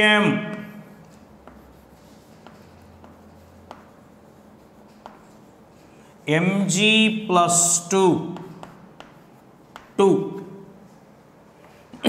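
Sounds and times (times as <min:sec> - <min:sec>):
chalk scratching on chalkboard: 0:00.6 - 0:06.3, 0:07.6 - 0:10.0
light chalk tap: 0:02.4 - 0:04.2, 0:08.3 - 0:10.5.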